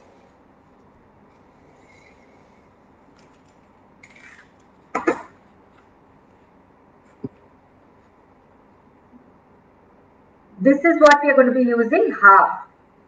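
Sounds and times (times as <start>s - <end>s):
person coughing: 4.9s - 5.4s.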